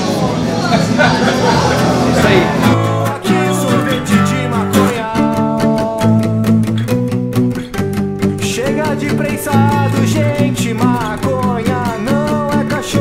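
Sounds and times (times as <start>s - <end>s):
plucked acoustic guitar music: 0.0s - 13.0s.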